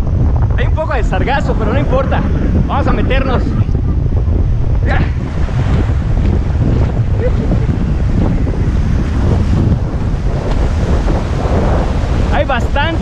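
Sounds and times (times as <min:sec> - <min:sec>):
wind buffeting microphone: 0:00.0 - 0:13.0
breaking surf: 0:00.4 - 0:13.0.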